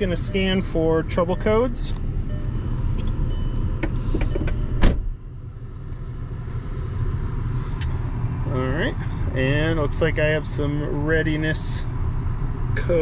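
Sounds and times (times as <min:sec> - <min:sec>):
car engine idling: 0:00.0 - 0:13.0.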